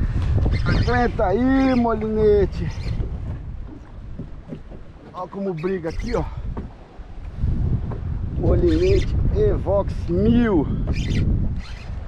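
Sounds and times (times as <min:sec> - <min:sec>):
wind buffeting microphone: 0:00.0 - 0:12.0
faint knocks: 0:03.0 - 0:05.4, 0:06.5 - 0:06.8.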